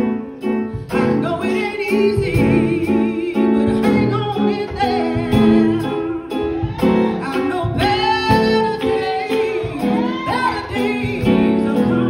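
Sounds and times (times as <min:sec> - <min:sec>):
keyboard accompaniment: 0:00.0 - 0:12.0
woman singing into microphone: 0:00.7 - 0:12.0.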